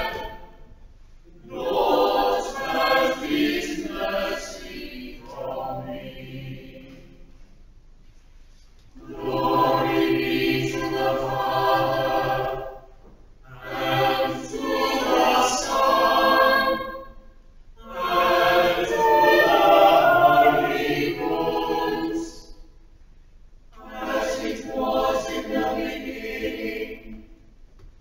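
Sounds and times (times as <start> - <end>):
choir singing unaccompanied: 0.0 - 7.3, 9.0 - 22.7, 23.8 - 27.4.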